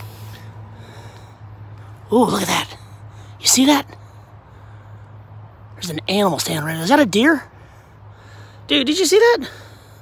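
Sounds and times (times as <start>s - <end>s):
person breathing: 0.0s - 2.0s, 2.8s - 3.4s, 4.0s - 5.7s, 7.5s - 8.7s, 9.5s - 10.0s.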